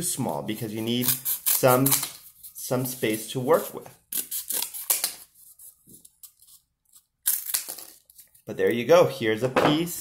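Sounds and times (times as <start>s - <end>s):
scissors cutting cardboard: 0.8s - 2.6s.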